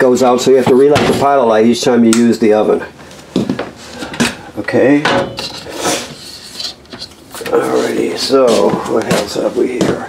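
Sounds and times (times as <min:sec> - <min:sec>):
rubbing and handling noise: 0:05.3 - 0:10.0.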